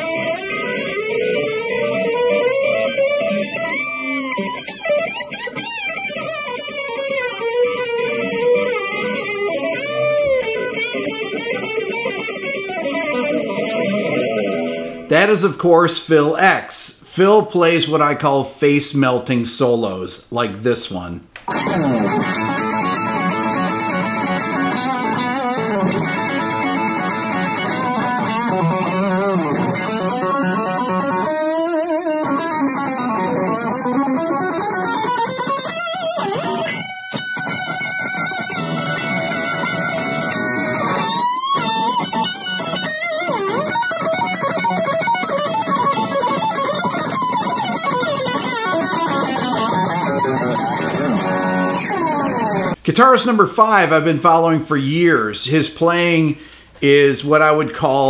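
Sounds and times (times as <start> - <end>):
electric guitar rock solo: 0.0 - 58.0.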